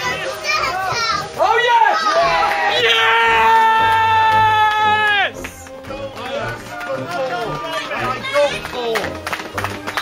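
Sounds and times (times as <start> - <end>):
people shouting and cheering: 0.0 - 9.2.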